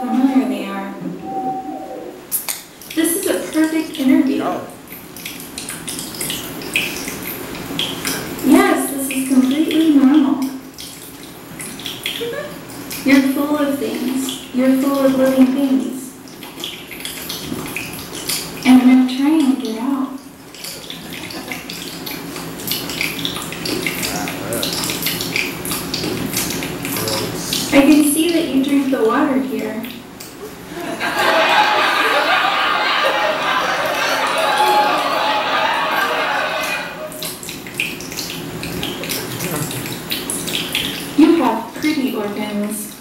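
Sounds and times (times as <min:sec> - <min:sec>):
water running and splashing: 0:02.7 - 0:43.0.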